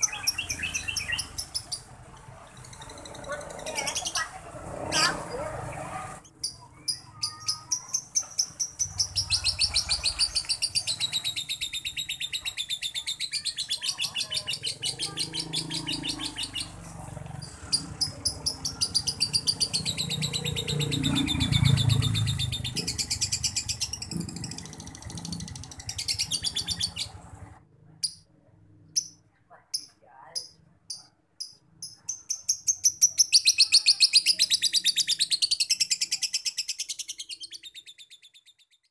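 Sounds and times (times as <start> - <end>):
lovebird chattering trill: 0.0 - 27.2, 28.9 - 38.6
bird chirps: 0.0 - 38.9.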